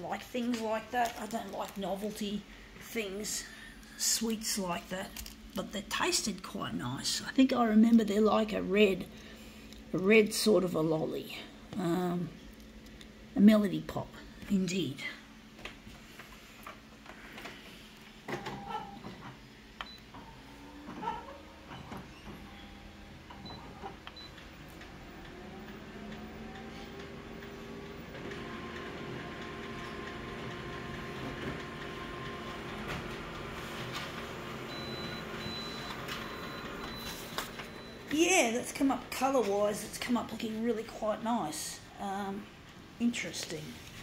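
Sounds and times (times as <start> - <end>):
photocopier mechanical hum: 0.0 - 44.0.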